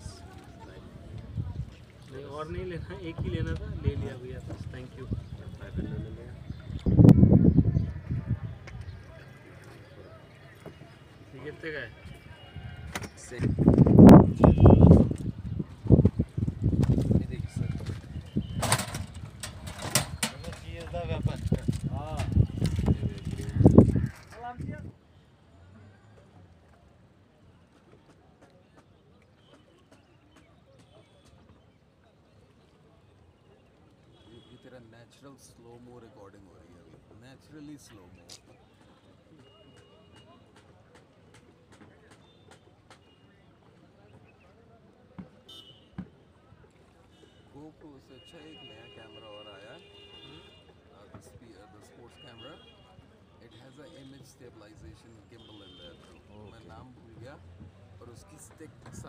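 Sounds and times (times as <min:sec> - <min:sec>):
distant voices over water: 0:00.0 - 0:59.0.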